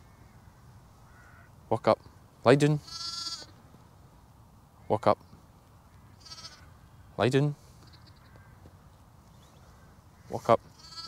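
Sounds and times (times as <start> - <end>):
sheep bleating: 2.8 - 3.5, 6.2 - 6.7, 10.7 - 11.0.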